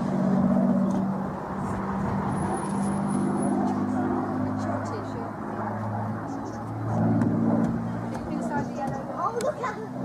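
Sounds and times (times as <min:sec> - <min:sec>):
propeller plane engine drone: 0:00.0 - 0:10.0
voices: 0:03.7 - 0:10.0.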